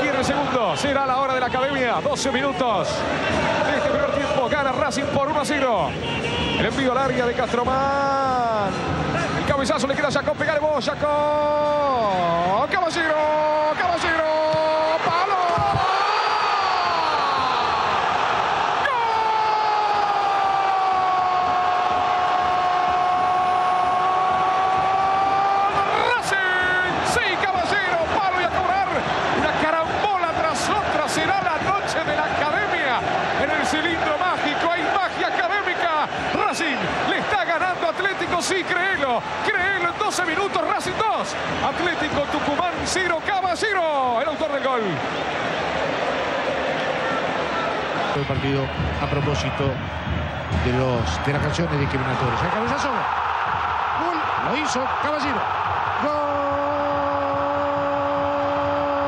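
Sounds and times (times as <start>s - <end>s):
fast excited commentary: 0.0s - 6.0s, 6.6s - 16.0s, 22.4s - 45.1s, 48.0s - 59.0s
stadium crowd: 0.0s - 59.0s
commentator's drawn-out goal cry: 53.9s - 59.0s.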